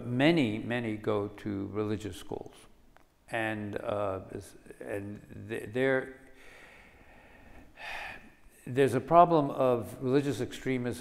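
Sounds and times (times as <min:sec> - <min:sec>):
man's sharp intake of breath: 0:06.4 - 0:08.4.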